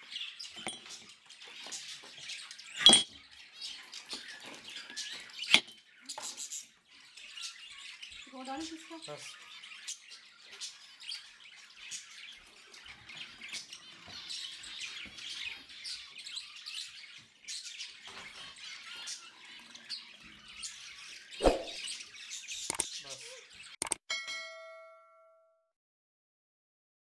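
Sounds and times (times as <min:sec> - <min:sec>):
small birds chirping: 0:00.0 - 0:24.0
sharp clicks: 0:22.7 - 0:22.9, 0:23.8 - 0:24.0
bell-like ding: 0:24.1 - 0:25.7.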